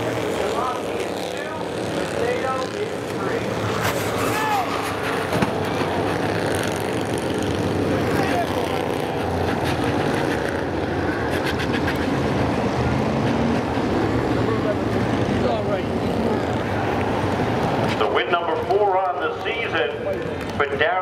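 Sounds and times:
people talking: 0.0s - 3.6s, 7.9s - 9.4s, 14.4s - 16.6s, 17.9s - 21.0s
race car engines droning: 0.0s - 21.0s.

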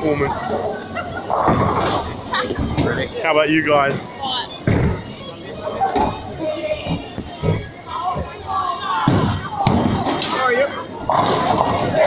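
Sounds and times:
people talking: 0.0s - 12.0s
bowling ball thud and rolling: 1.3s - 3.0s.

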